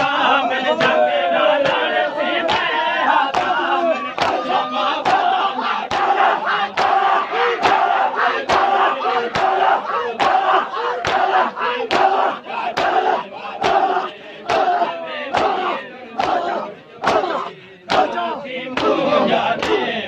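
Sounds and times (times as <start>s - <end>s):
crowd beating chests: 0.0s - 20.0s
men chanting and shouting: 0.0s - 20.0s.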